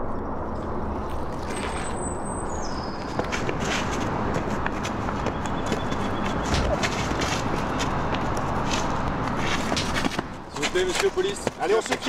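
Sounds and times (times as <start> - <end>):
scuffling footsteps: 1.0 - 12.0.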